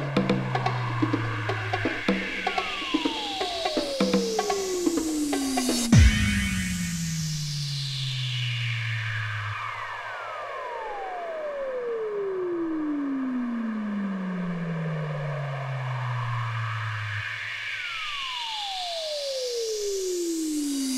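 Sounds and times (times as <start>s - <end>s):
synthesizer tone gliding down: 0.0s - 20.9s
low held bass note: 6.0s - 7.4s.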